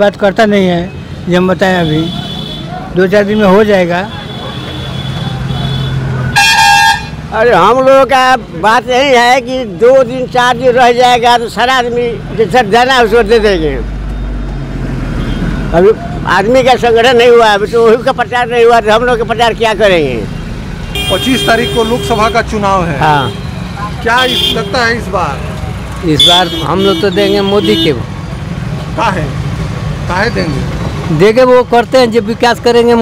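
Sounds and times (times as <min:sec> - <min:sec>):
man talking: 0:00.0 - 0:02.2, 0:02.8 - 0:04.2, 0:07.3 - 0:13.9, 0:15.7 - 0:20.3, 0:21.0 - 0:28.1, 0:30.0 - 0:33.0
motor vehicle engine rumbling: 0:00.0 - 0:32.8.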